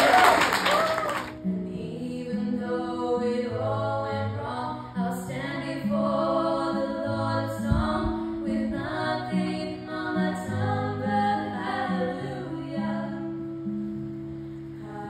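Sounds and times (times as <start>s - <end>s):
acoustic guitar: 0.0s - 15.0s
young voices singing in harmony: 1.6s - 13.6s, 14.8s - 15.0s
short low thump: 7.7s - 8.2s.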